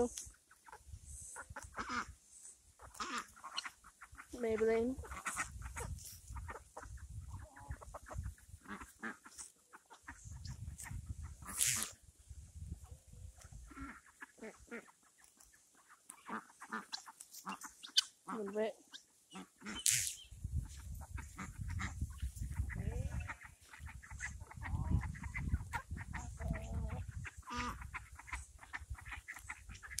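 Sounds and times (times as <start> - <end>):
chickens clucking: 0.0 - 30.0.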